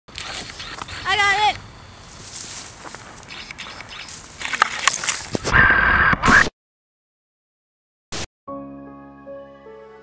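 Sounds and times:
rustling background noise: 0.1s - 5.4s.

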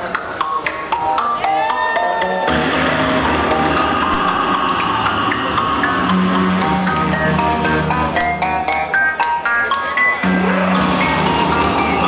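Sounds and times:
electronic band music: 0.0s - 12.0s.

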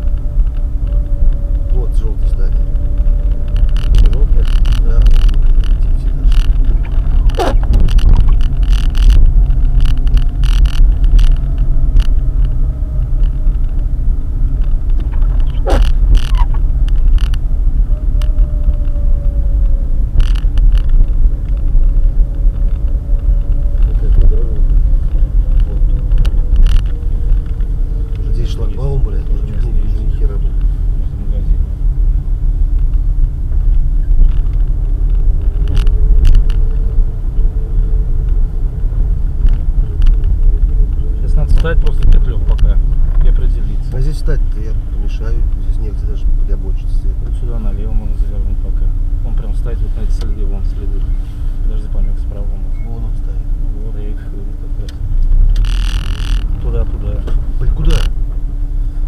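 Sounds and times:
car engine and road rumble: 0.0s - 59.0s
knocks and rattles over bumps: 2.6s - 19.0s.

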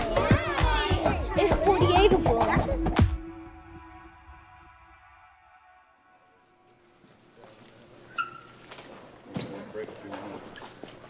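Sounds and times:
indistinct voices talking: 0.0s - 3.9s.

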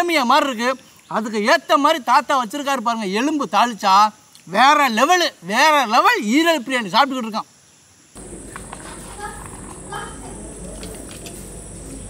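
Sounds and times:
steady background hum: 8.2s - 12.0s.

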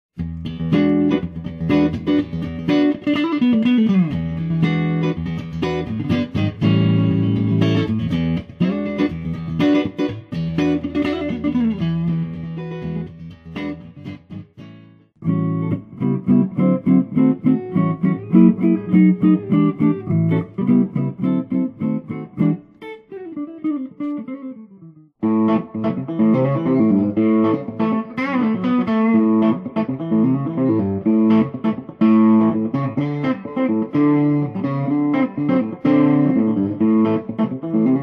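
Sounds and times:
electric guitar through amplifier: 15.2s - 38.0s.

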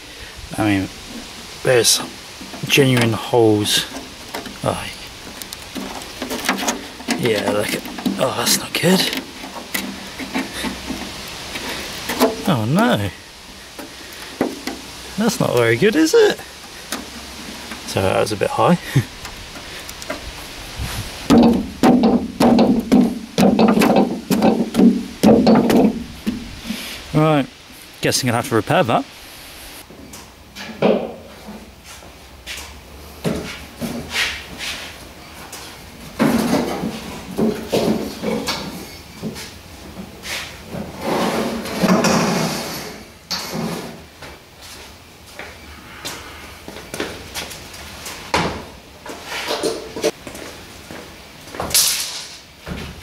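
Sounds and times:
metal wheelbarrow scraping on wood: 1.0s - 27.2s, 36.1s - 44.2s
boot stamping on steel: 21.3s - 26.4s.

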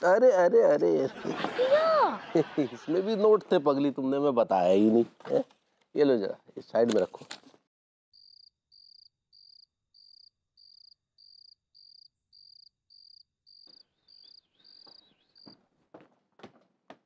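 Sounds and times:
faint cricket chirping: 8.2s - 15.5s.

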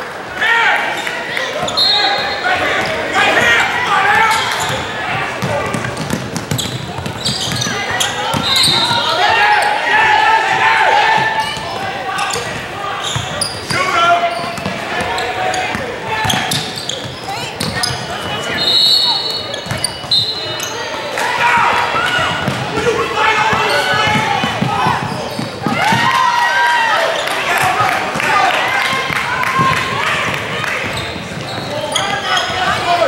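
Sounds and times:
people shouting: 0.4s - 5.8s, 7.6s - 16.5s, 21.2s - 30.9s
referee's whistle: 1.6s - 3.0s, 6.6s - 9.8s, 17.8s - 20.8s
basketball dribbling on court: 5.4s - 9.0s.

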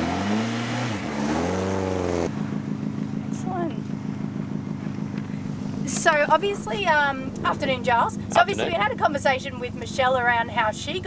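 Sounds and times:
rally car engine revving: 0.0s - 9.0s
rally car engine idling: 2.3s - 11.0s.

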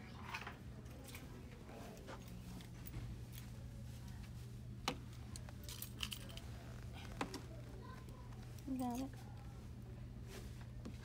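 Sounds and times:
low steady hum: 0.0s - 11.0s.

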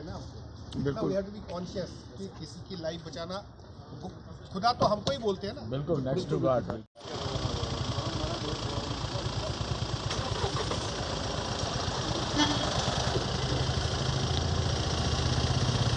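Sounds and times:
vehicle engine running: 7.0s - 15.9s.

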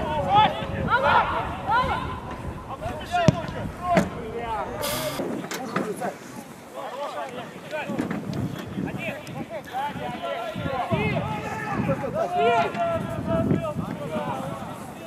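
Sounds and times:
players calling and shouting: 0.0s - 5.2s
brief hiss: 4.8s - 5.2s.

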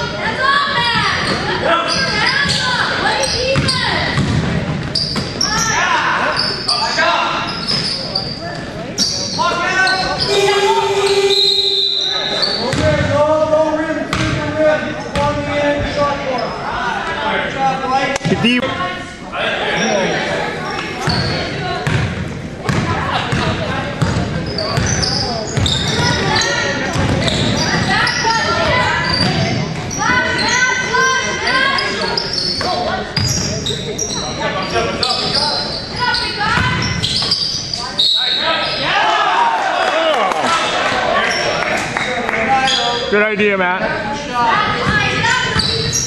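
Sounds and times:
basketball bouncing on hardwood floor: 3.6s - 4.5s, 26.9s - 27.2s
people shouting: 10.2s - 12.5s.

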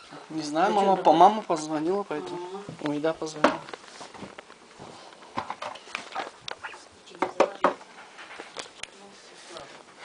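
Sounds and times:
soft rustling: 1.0s - 7.1s, 7.8s - 10.0s.

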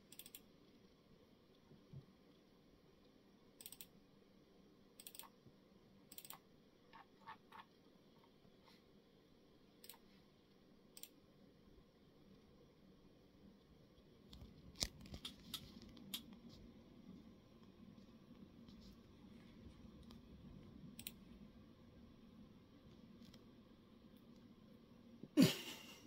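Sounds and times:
faint clicks and scratches: 0.0s - 25.2s.

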